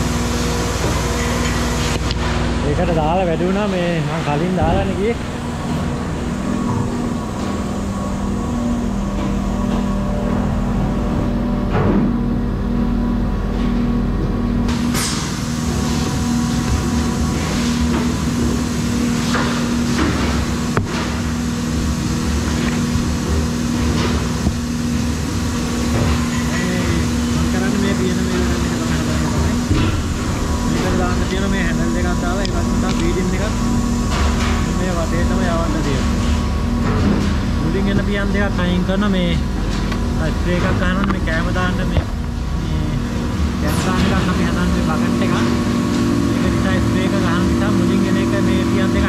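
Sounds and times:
factory machinery humming: 0.0s - 49.0s.

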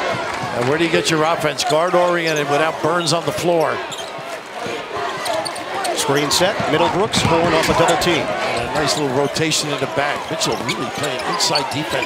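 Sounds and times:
murmur of arena crowd: 0.0s - 12.0s
basketball bouncing on hardwood: 6.4s - 8.1s.

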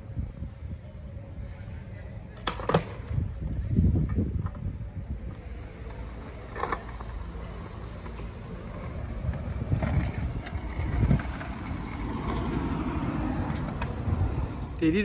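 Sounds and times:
skateboard wheels rolling on concrete: 0.0s - 15.0s
skateboard clacks: 2.4s - 3.2s, 5.3s - 14.4s.

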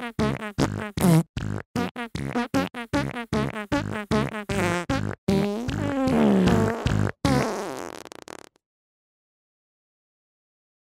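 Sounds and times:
comedic fart sounds: 0.0s - 8.6s.

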